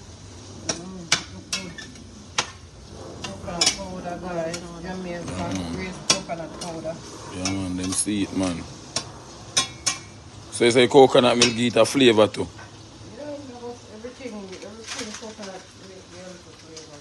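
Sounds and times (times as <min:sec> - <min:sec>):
vegetables sizzling: 0:00.0 - 0:17.0
metal spatula scraping a pan: 0:01.1 - 0:10.2.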